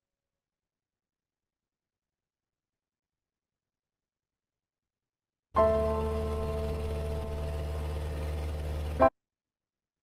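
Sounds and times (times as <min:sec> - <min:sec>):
boat engine droning: 0:05.6 - 0:09.1.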